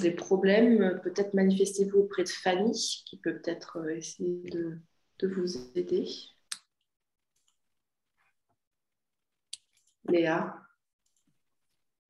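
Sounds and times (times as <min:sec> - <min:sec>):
person speaking: 0:00.0 - 0:06.7, 0:09.6 - 0:10.8.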